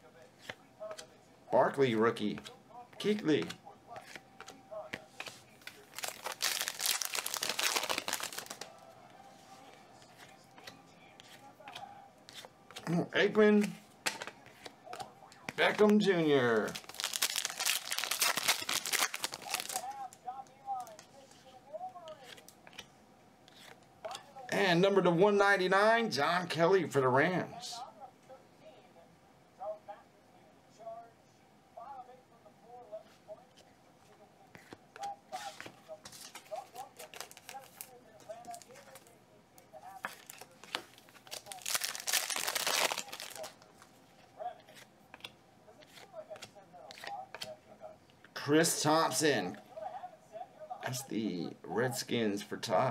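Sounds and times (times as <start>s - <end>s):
plastic card sleeves crinkling: 2.2s - 24.5s, 34.5s - 47.6s
plastic wrapping crinkling: 5.2s - 8.8s, 16.6s - 21.0s, 35.4s - 39.1s, 40.0s - 43.9s.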